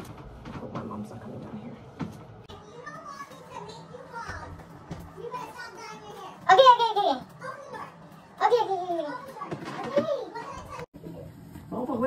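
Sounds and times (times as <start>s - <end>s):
children talking quietly: 2.5s - 11.3s.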